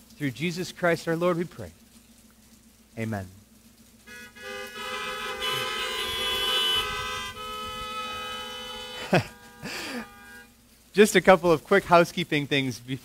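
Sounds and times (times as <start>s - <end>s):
car horns honking: 4.0s - 10.6s
man laughing: 9.0s - 10.3s.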